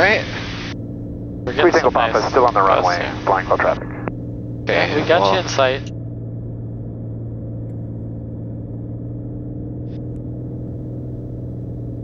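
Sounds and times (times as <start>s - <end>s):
propeller engine droning: 0.0s - 12.0s.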